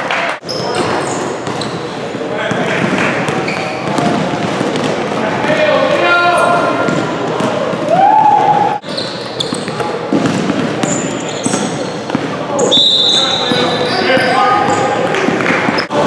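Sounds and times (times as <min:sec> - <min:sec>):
basketball bouncing on hardwood: 0:10.1 - 0:10.8, 0:11.5 - 0:12.4.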